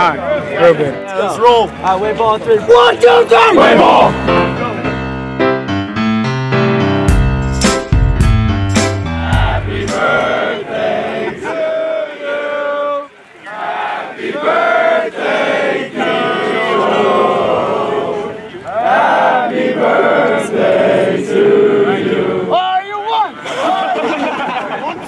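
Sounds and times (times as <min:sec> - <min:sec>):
piano music: 0:03.6 - 0:10.4
group singing in unison: 0:09.0 - 0:22.5.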